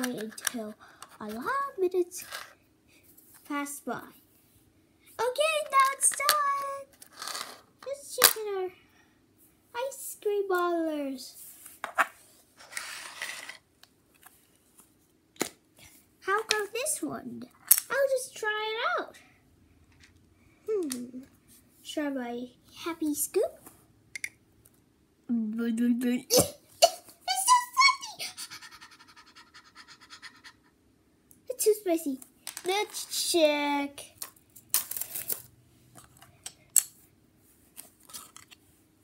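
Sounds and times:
child's voice: 0:00.0 - 0:02.3, 0:03.4 - 0:04.2, 0:05.2 - 0:06.9, 0:07.8 - 0:08.8, 0:09.8 - 0:11.4, 0:16.2 - 0:19.3, 0:20.7 - 0:21.3, 0:21.9 - 0:23.6, 0:26.3 - 0:29.1, 0:31.5 - 0:34.2
toy pieces rustling: 0:12.6 - 0:13.6, 0:34.2 - 0:36.9, 0:37.8 - 0:38.6
child exclaiming: 0:26.8 - 0:29.1
child panting breathily: 0:28.2 - 0:30.8.

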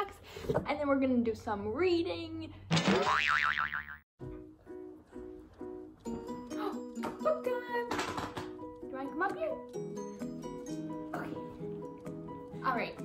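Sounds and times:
wobbling boing sound effect: 0:02.8 - 0:04.0
light background music: 0:04.2 - 0:13.0.

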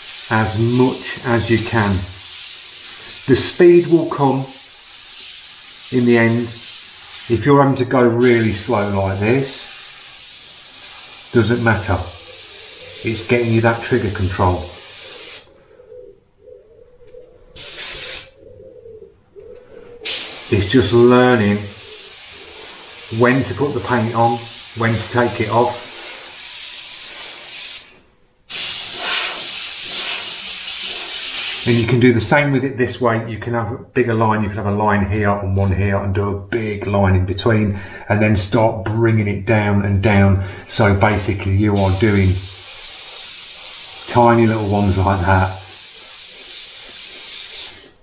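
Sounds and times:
airbrush spraying hiss: 0:00.0 - 0:07.5, 0:08.2 - 0:15.5, 0:17.6 - 0:18.3, 0:20.0 - 0:31.9, 0:41.8 - 0:48.0.

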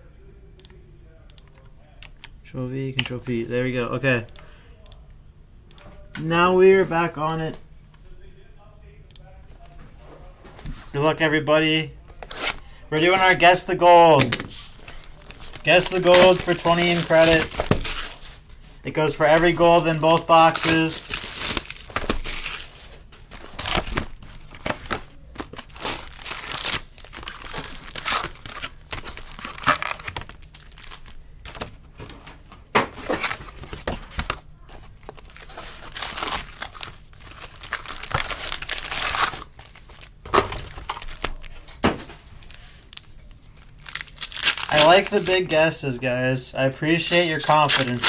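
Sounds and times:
foil wrappers crinkling and tearing: 0:14.2 - 0:31.7, 0:33.0 - 0:45.8, 0:46.7 - 0:48.0.

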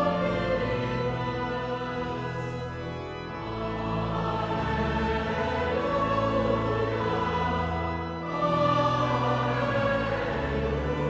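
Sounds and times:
choir and congregation singing hymn: 0:00.0 - 0:11.0
low organ bass notes: 0:00.0 - 0:11.0.

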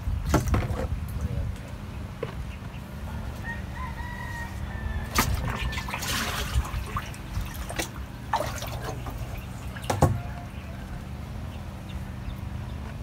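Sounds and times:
rooster crowing: 0:03.4 - 0:06.3, 0:09.9 - 0:11.4
water splashing in a plastic drum: 0:05.1 - 0:10.2.

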